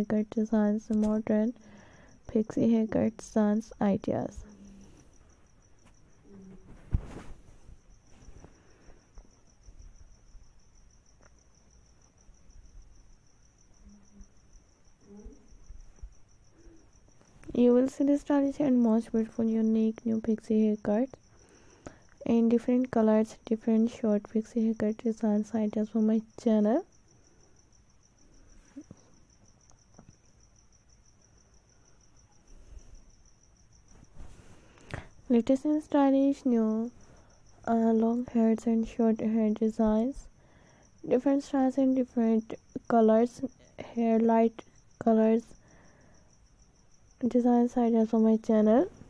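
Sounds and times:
high-pitched insect trilling: 7.8s - 49.0s.

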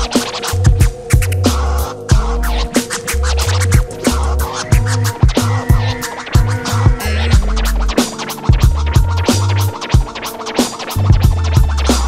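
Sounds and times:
hip hop instrumental beat: 0.0s - 12.0s
record scratching on turntable: 0.0s - 12.0s.

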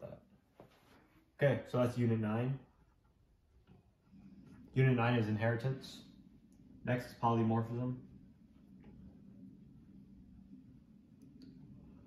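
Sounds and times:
faint low room hum: 0.0s - 12.0s.

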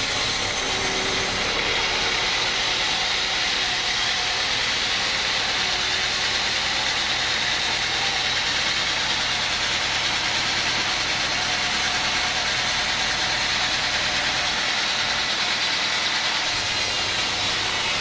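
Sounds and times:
band saw cutting log: 0.0s - 18.0s.

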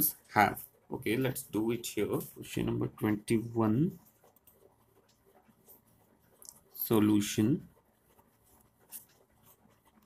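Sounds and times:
pen scratching on paper: 0.0s - 10.0s.

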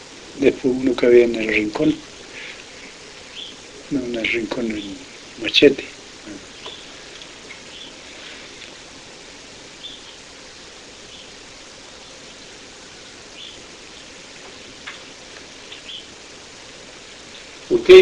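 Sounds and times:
outdoor ambient hiss: 0.0s - 18.0s
faint bird chirps: 3.2s - 3.6s, 6.2s - 8.6s, 9.8s - 10.3s, 11.0s - 16.5s.

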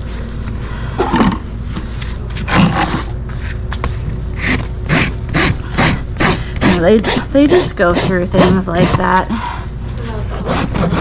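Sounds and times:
rasp filing hoof: 4.4s - 9.3s, 10.1s - 11.0s.

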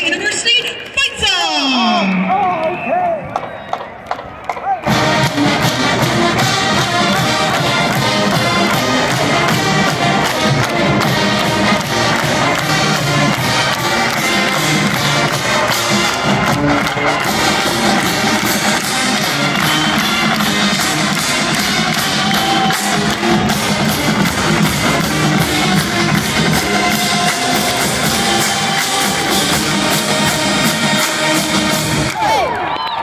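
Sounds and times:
marching band brass: 0.0s - 32.8s
drumline: 0.0s - 33.0s.

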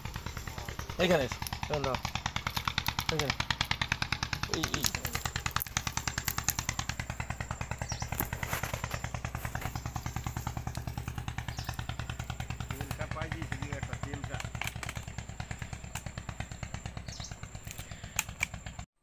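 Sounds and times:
engine chugging: 0.0s - 18.9s.

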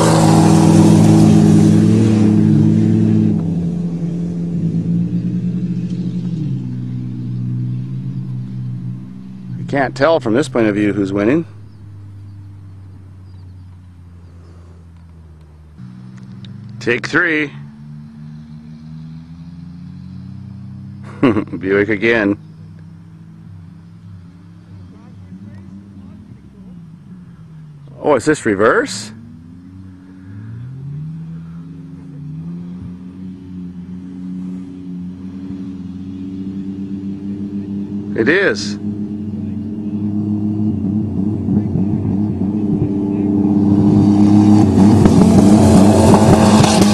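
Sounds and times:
engine running steadily: 0.0s - 46.9s.

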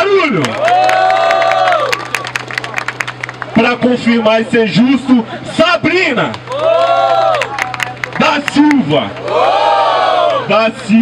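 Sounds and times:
crowd cheering and clapping: 0.0s - 3.9s, 6.3s - 11.0s.

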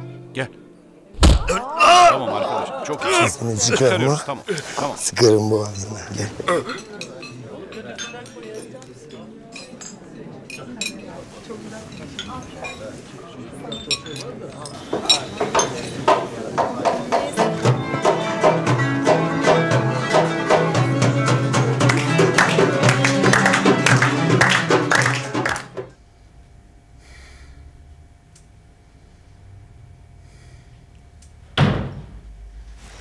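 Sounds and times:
low chatter: 0.6s - 26.0s
clinking glasses and dishes: 5.6s - 17.7s
oud and violin band playing: 17.4s - 25.5s.

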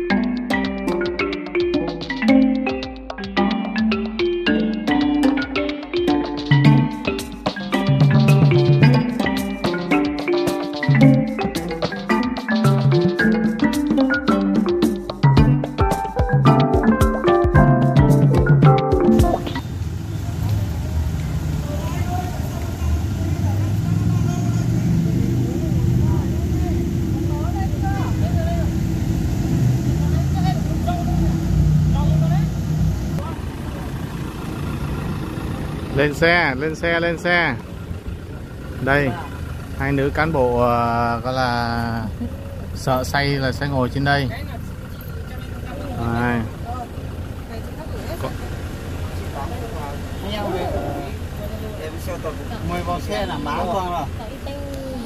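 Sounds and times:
engine idling: 19.4s - 55.0s
passengers talking quietly: 21.6s - 28.8s, 44.5s - 55.0s.

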